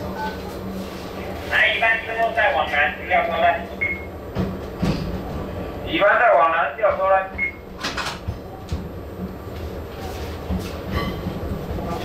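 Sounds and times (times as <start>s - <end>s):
electric train rumbling slowly: 0.0s - 12.0s
radio call voice: 1.5s - 3.8s.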